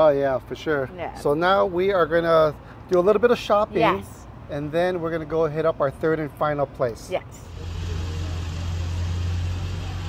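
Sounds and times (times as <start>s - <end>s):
low engine-like hum: 3.7s - 10.0s.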